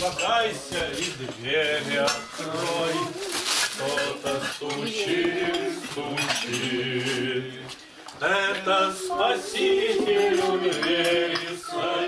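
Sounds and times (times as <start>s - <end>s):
dishes and cutlery clinking: 0.0s - 8.7s, 9.3s - 12.0s
voices: 0.0s - 12.0s.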